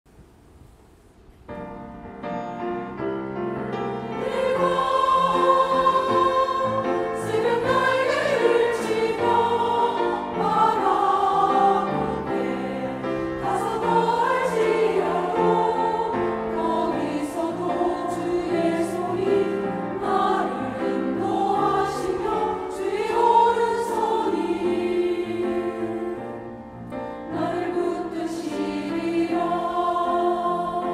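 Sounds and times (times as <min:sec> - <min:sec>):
keyboard accompaniment: 0:01.5 - 0:30.9
choir singing: 0:03.8 - 0:30.9.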